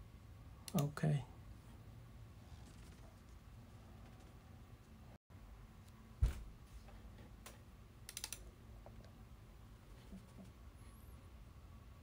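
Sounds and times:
low thump: 6.2 - 6.6
mouse and keyboard clicks: 8.1 - 8.4.

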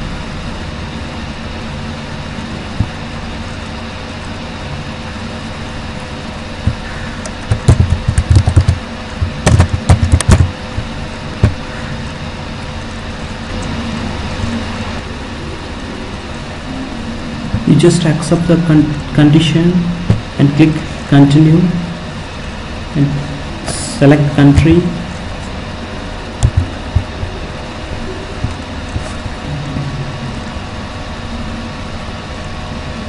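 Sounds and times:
fan hum and hiss: 0.0 - 33.0
keyboard clicks: 6.7 - 10.5.

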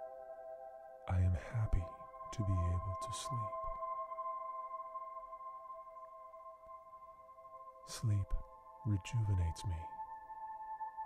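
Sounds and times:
ambient music sustained chord: 0.0 - 11.0.

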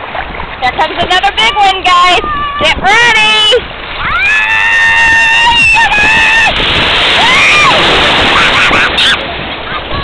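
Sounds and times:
sea wave breaking: 0.0 - 10.0
child screaming: 2.2 - 2.8, 4.0 - 6.5, 7.2 - 7.8, 8.5 - 10.0
child shouting: 2.2 - 2.8, 9.7 - 10.0.

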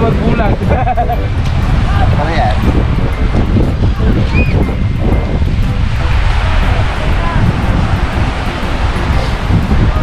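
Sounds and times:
breaking surf: 0.0 - 10.0
music: 0.0 - 10.0
wind rumbling on microphone: 0.0 - 10.0.

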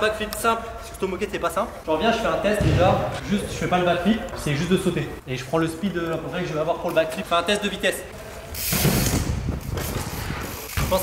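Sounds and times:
bike tyres rolling on turf: 6.2 - 11.0
bike freewheel hub clicking: 8.5 - 11.0.

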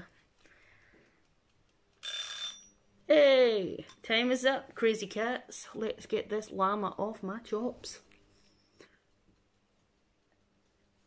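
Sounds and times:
high-pitched timer alarm ring: 2.0 - 2.8.

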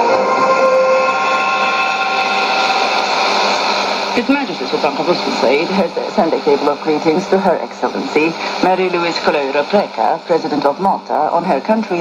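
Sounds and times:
shortwave radio hiss: 1.0 - 12.0.

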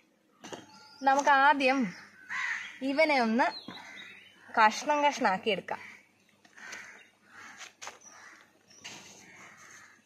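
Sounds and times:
woman speaking: 1.0 - 2.0, 2.8 - 3.7, 4.5 - 5.9
crow cawing: 2.2 - 2.8, 3.7 - 4.2, 5.7 - 8.5, 9.2 - 10.0.

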